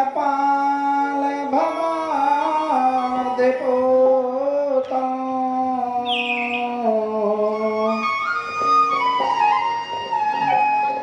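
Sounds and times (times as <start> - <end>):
devotional music with held notes: 0.0 - 11.0.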